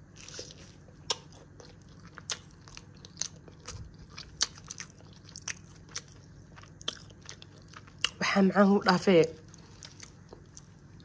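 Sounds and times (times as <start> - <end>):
crunchy chewing: 0.0 - 8.2, 9.3 - 11.0.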